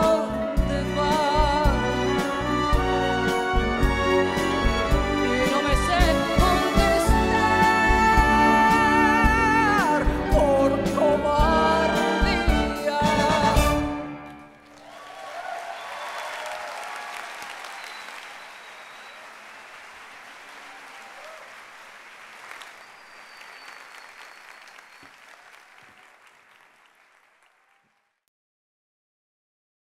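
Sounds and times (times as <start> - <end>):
large audience applauding: 14.4 - 28.2.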